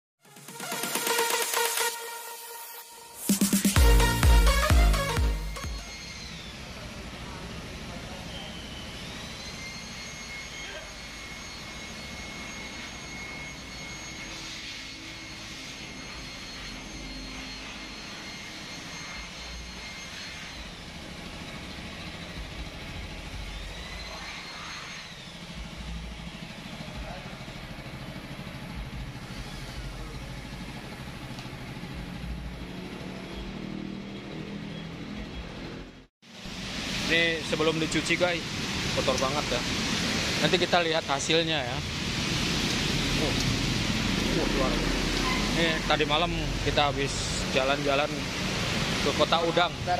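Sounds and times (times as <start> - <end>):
steady machine noise: 0.2 - 49.9
motor whining: 3.8 - 36.0, 37.4 - 49.9.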